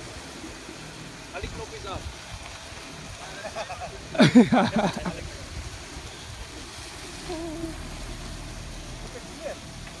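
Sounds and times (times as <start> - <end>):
faint voices: 7.0 - 8.2.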